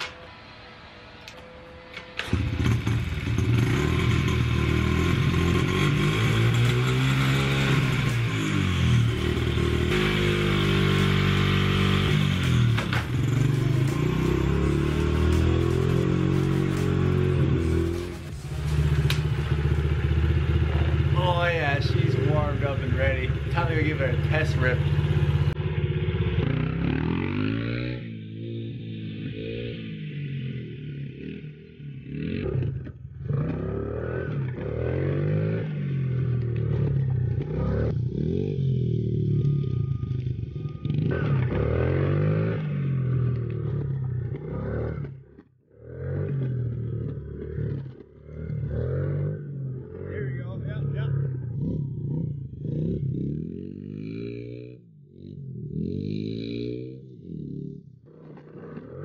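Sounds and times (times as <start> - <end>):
dirt bike engine revving: 2.2 - 59.0.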